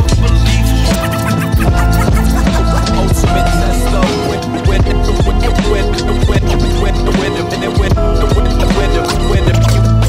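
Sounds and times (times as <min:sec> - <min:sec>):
hip hop beat: 0:00.0 - 0:10.0
turntable scratching: 0:00.0 - 0:10.0.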